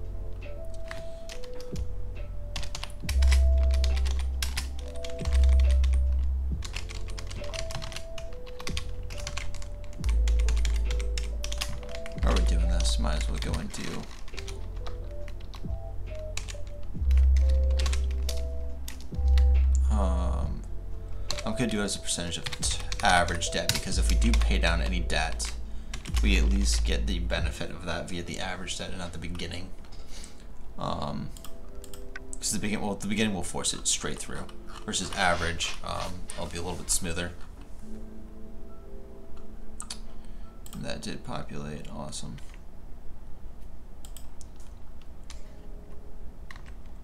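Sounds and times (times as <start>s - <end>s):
keyboard typing: 0.6s - 1.9s, 2.5s - 20.0s, 20.6s - 27.6s, 31.3s - 32.4s, 44.0s - 47.0s
music with deep bass line: 1.7s - 13.7s, 14.4s - 21.4s, 22.6s - 27.6s.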